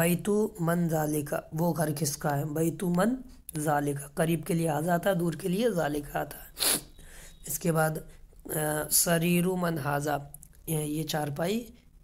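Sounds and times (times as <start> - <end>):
person speaking: 0.0 - 12.0
sharp intake of breath: 6.5 - 7.4.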